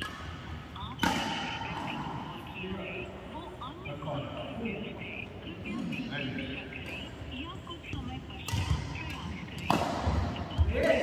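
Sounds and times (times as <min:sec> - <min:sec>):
racket striking shuttlecock: 0:00.0 - 0:00.4, 0:01.0 - 0:02.2, 0:08.5 - 0:11.0.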